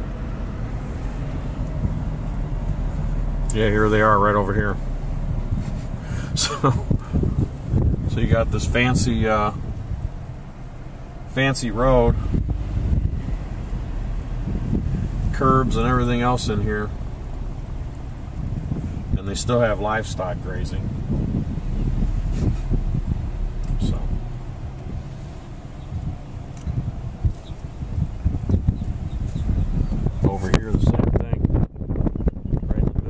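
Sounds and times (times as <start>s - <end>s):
car road noise: 0.0s - 33.0s
wind buffeting microphone: 0.0s - 33.0s.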